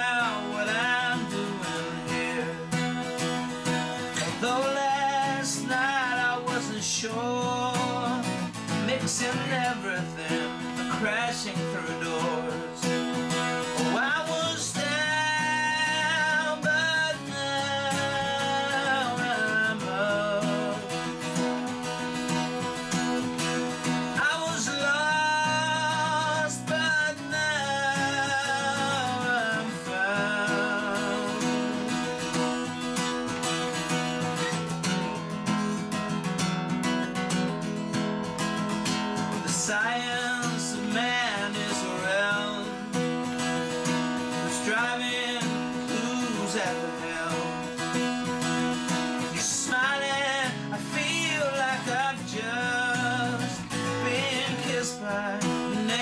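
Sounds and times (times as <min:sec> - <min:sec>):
man singing with vibrato: 0:00.0 - 0:36.1, 0:38.6 - 0:56.0
acoustic guitar strumming: 0:00.0 - 0:56.0.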